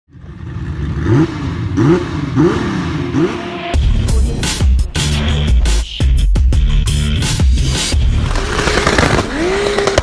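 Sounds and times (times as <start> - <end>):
car engine revving: 0.1 - 5.5, 7.6 - 10.0.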